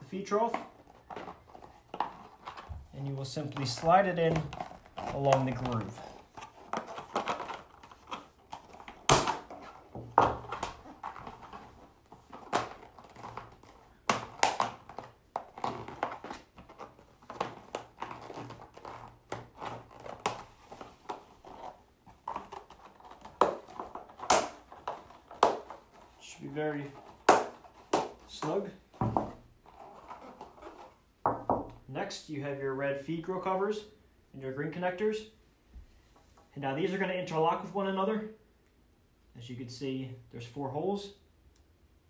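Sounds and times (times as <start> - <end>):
plastic strip scraping in groove: 3.5 - 26.2
sharp plastic knocks: 27.2 - 28.3.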